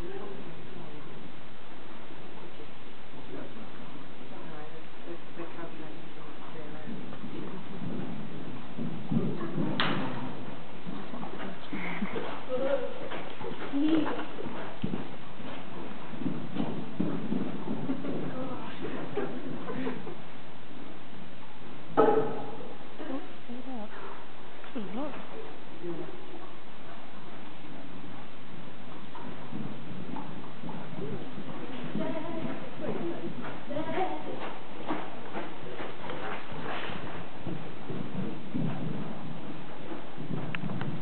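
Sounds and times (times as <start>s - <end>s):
pony hoofbeats on soft ground: 3.3s - 21.4s, 22.2s - 41.0s
background voices: 29.2s - 38.7s.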